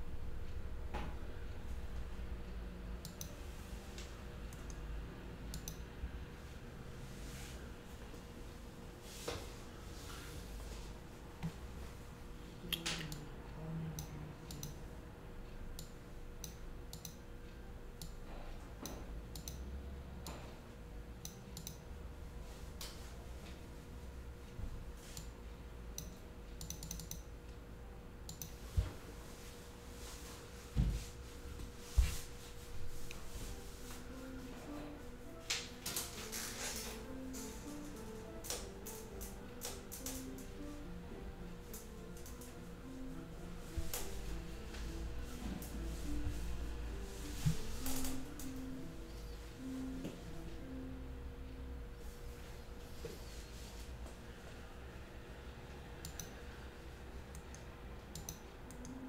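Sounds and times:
steady low hum: 0.0 - 59.0
computer keyboard keys clicking: 3.0 - 3.4, 5.5 - 5.8, 14.0 - 14.8, 15.8 - 17.2, 18.8 - 19.7, 21.2 - 21.8, 26.0 - 27.3, 28.3 - 28.6, 35.6 - 40.5, 41.7 - 42.5, 56.0 - 56.4, 57.4 - 59.0
sharp clicks: 26.0 - 27.3.

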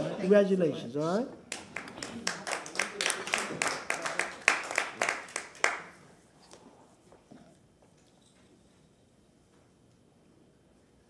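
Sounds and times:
hand clapping: 1.5 - 6.0.

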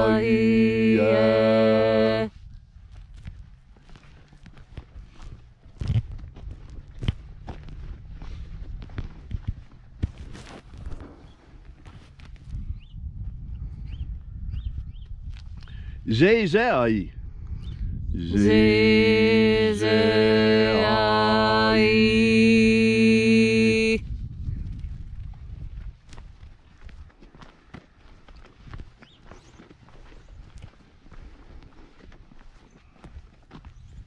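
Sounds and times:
voice chanting a low drone: 0.0 - 2.3, 18.1 - 24.0
footsteps on dry ground: 2.7 - 12.5, 24.8 - 34.0.

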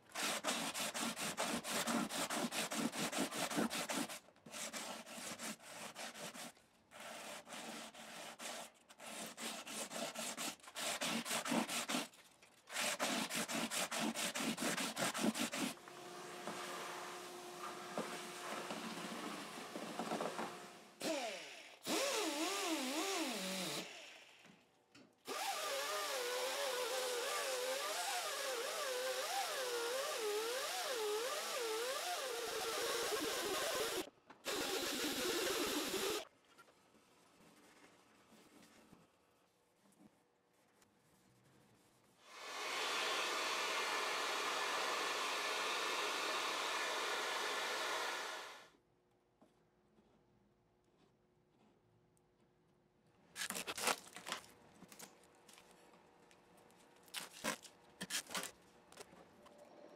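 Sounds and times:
rotary tool polishing: 25.3 - 36.2.

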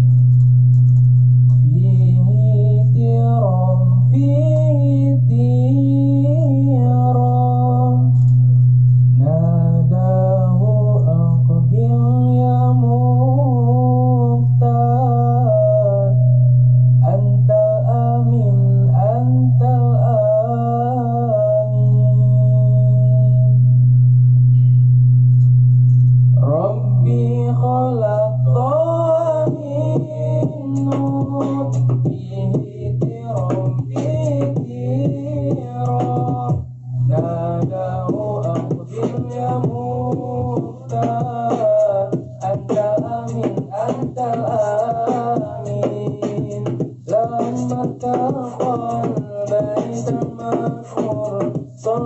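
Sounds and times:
low hummed bass drone: 0.0 - 52.0
man singing devotional song: 1.6 - 8.2, 9.2 - 16.4, 17.0 - 23.5, 26.4 - 52.0.

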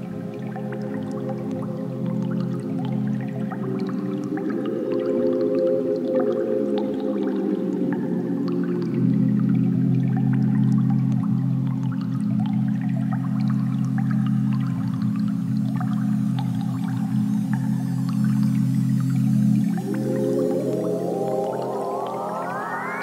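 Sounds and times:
low synthesizer pad: 16.4 - 23.0.

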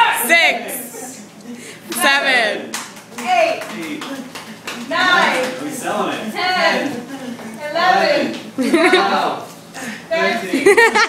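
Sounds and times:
hand claps: 1.9 - 5.7
high-pitched voices laughing: 8.4 - 11.0.

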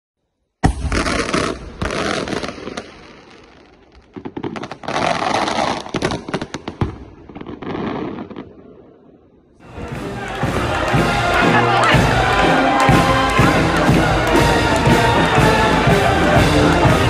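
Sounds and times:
firework crackling: 0.6 - 8.8, 9.6 - 17.0.

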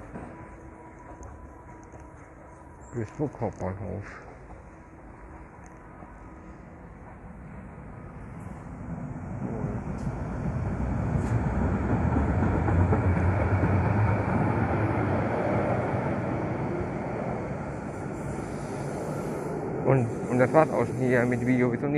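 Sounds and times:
tram rumbling past: 0.0 - 21.9.

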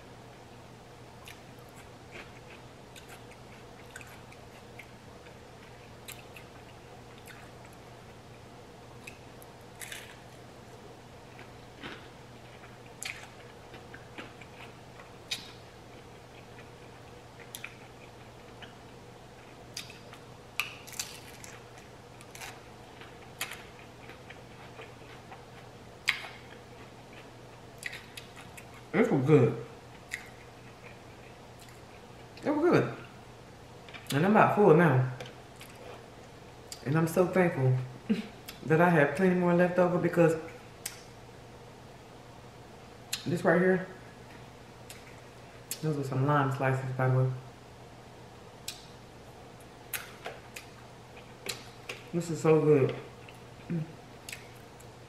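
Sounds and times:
person chewing food: 1.2 - 8.4, 9.0 - 28.9, 29.9 - 32.4, 35.2 - 36.8, 49.6 - 52.1, 53.1 - 55.0.

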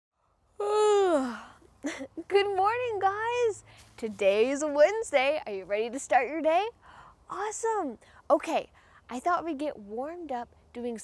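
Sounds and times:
woman yawning: 0.6 - 1.6.

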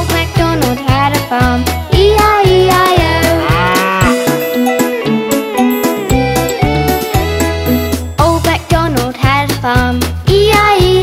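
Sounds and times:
children's instrumental music: 0.0 - 11.0
cartoon cow mooing: 3.2 - 4.7.

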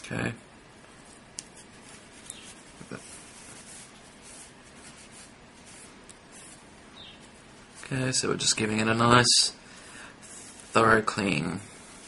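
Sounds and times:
tissue rubbing on metal: 1.0 - 9.1, 10.2 - 12.0.

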